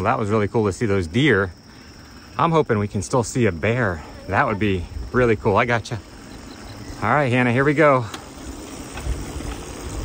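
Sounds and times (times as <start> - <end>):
bicycle tyres on asphalt: 0.0 - 10.0.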